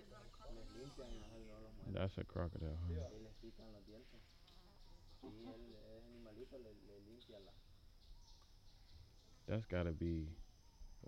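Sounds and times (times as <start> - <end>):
high-pitched insect drone: 0.0 - 1.8.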